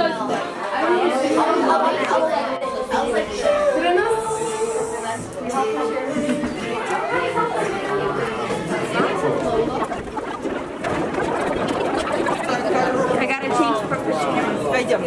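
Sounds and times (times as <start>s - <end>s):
adults and children chattering: 0.0s - 15.0s.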